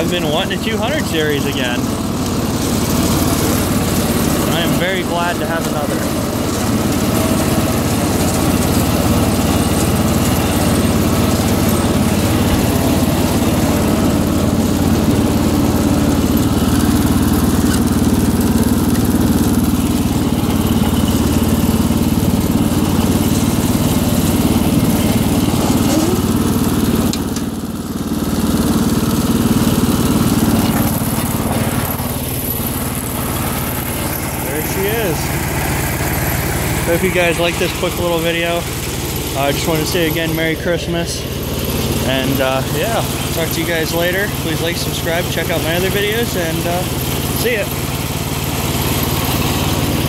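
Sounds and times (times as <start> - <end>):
garden tractor engine running: 0.0 - 50.0.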